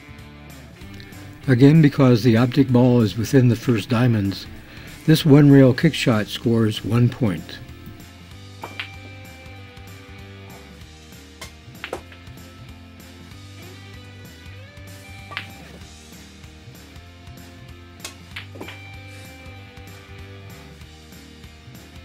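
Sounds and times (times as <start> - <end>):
background music: 0.0 - 22.0
pool balls clicking: 0.8 - 8.0, 8.6 - 9.3, 11.4 - 12.4, 15.1 - 15.8, 18.0 - 19.0.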